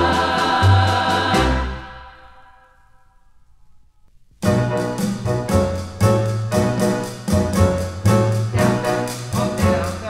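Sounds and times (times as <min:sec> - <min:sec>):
bass line: 0:00.0 - 0:02.4, 0:04.4 - 0:10.0
women's choir singing: 0:00.0 - 0:02.7
faint record noise: 0:00.0 - 0:10.0.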